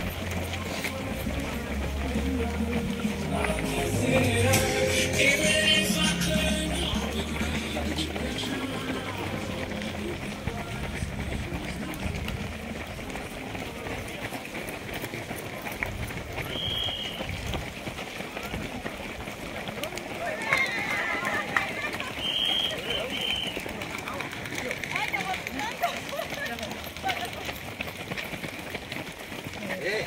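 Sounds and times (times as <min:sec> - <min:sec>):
indistinct voices: 0:00.0 - 0:14.6
runners' footsteps on pavement: 0:00.0 - 0:30.0.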